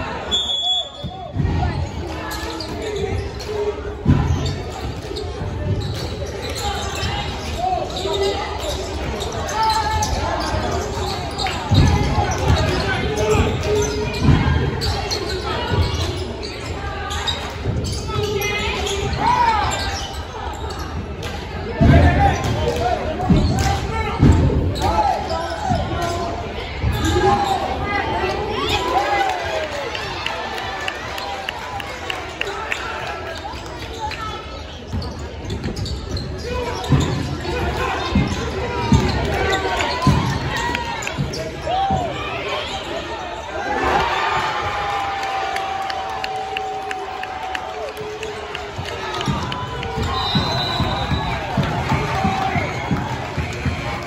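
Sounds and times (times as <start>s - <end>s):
spectators shouting: 36.9s - 54.0s.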